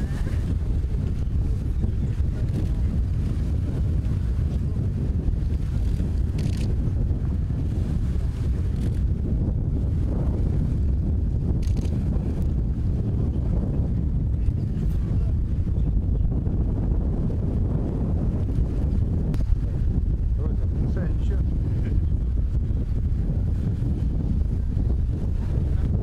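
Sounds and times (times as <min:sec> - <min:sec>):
faint voices: 0:00.0 - 0:05.4
wind buffeting microphone: 0:00.0 - 0:26.0.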